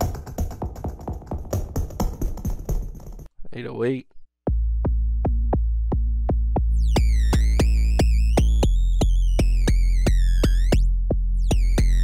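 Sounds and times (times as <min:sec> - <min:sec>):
deep synth kick bass: 0:04.5 - 0:12.0.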